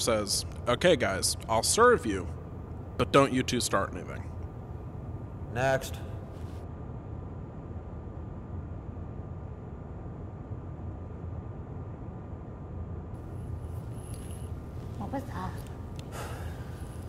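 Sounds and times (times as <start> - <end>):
faint steady hum: 0.0 - 17.0
low rumble of room tone: 0.0 - 17.0.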